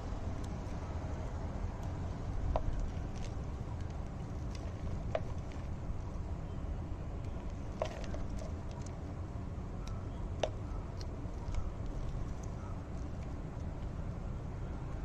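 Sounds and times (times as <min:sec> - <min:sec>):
low background rumble: 0:00.0 - 0:15.0
hands working potting mix: 0:01.8 - 0:06.3, 0:07.2 - 0:09.2, 0:09.8 - 0:14.0.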